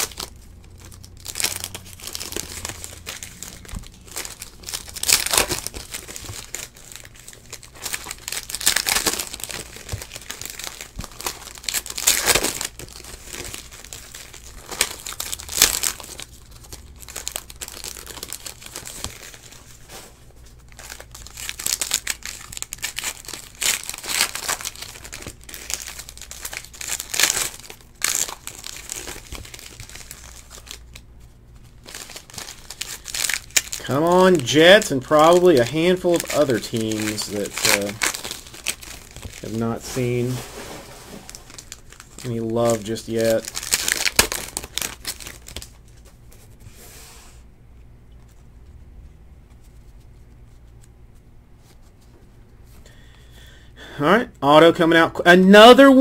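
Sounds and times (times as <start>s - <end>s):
foil wrappers crinkling and tearing: 0.0s - 46.6s.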